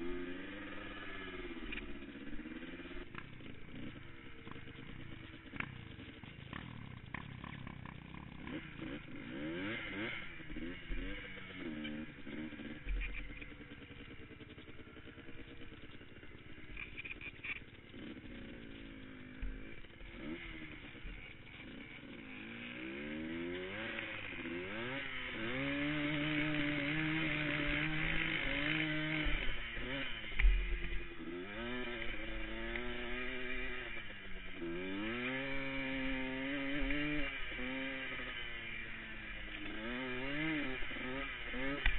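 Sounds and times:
atv engine revving: 0.0 - 41.9.

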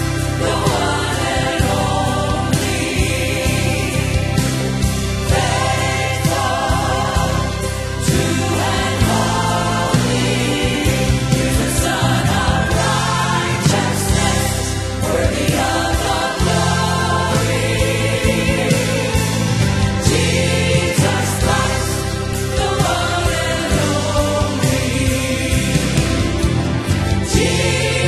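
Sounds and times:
gospel choir singing: 0.0 - 28.0.

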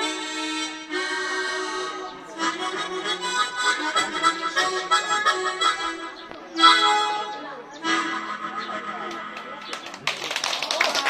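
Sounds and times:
harmonica chord: 0.0 - 9.1
people clapping: 9.0 - 11.0.

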